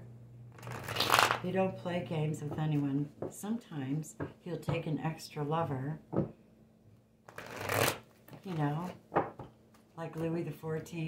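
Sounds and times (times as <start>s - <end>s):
cards being shuffled: 0.5s - 1.4s, 7.3s - 9.0s.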